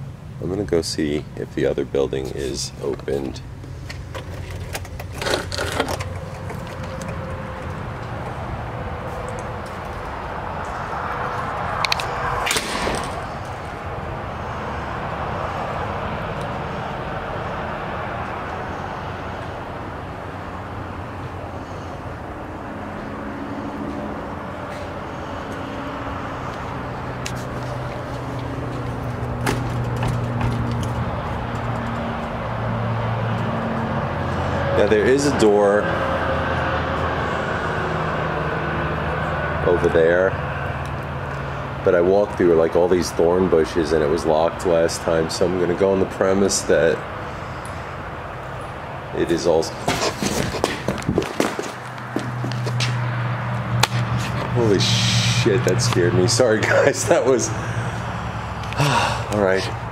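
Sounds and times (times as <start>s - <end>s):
distant road traffic hum: 0.0s - 59.9s
footsteps: 23.8s - 25.7s, 26.5s - 32.3s, 49.7s - 54.6s.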